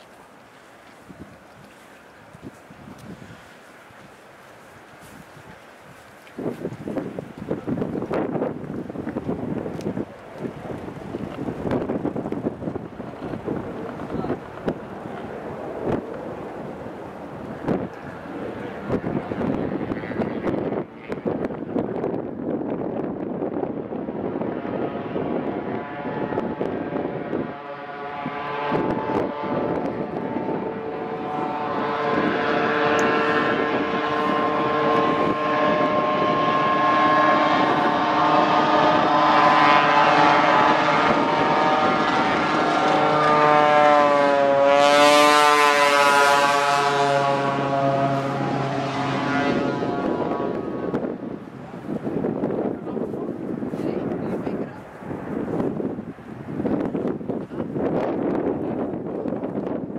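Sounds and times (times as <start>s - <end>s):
propeller plane engine running: 0.0s - 23.1s, 23.8s - 59.9s
wind buffeting microphone: 0.0s - 59.9s.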